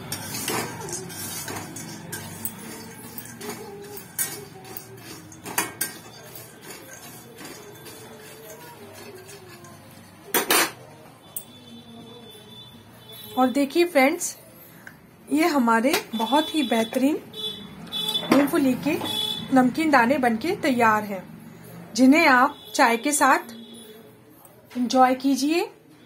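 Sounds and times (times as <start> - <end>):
peanuts rattling in pan: 0.0 - 9.9
spatula scraping in metal pan: 0.0 - 10.4.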